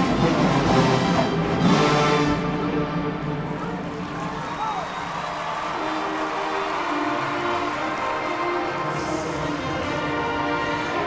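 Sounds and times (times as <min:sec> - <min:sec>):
brass sustained notes: 0:00.0 - 0:11.0
marching band playing: 0:00.0 - 0:11.0.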